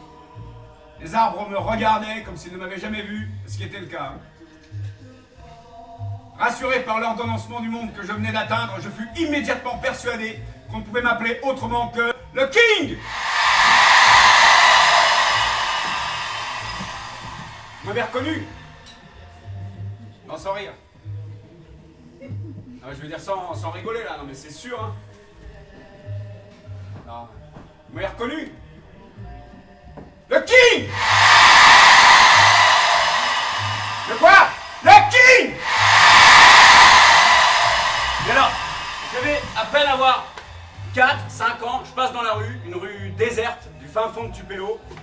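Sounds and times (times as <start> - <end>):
loud hiss-like noise rush: 13.0 - 18.4, 30.9 - 40.6
crowd cheering and screaming: 13.0 - 18.9, 30.8 - 40.8.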